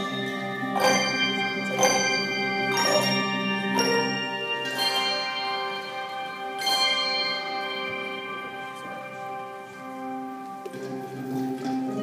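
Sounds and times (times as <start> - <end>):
handbell chords ringing: 0.0 - 9.7.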